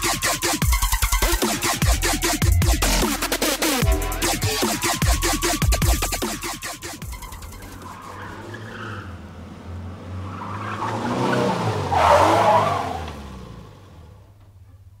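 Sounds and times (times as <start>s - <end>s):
tire skid squeal: 7.1s - 9.4s, 10.1s - 13.4s
car engine speeding past: 7.6s - 14.2s.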